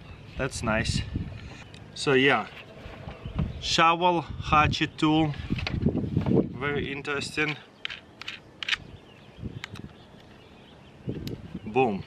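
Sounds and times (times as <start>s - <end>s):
faint birdsong chirping: 0.0s - 12.0s.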